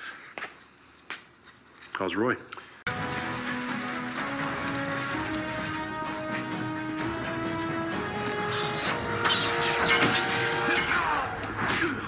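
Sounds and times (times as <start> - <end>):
dramatic score music: 2.9 - 12.0.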